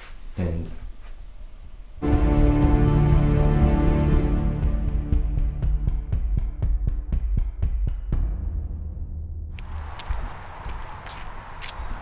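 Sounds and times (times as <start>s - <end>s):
steady hiss: 0.0s - 2.0s
footsteps on wet leaves: 9.6s - 12.0s.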